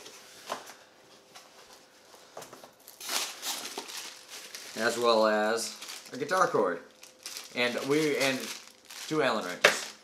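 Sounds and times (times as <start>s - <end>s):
plastic packaging crinkling: 2.8s - 10.0s.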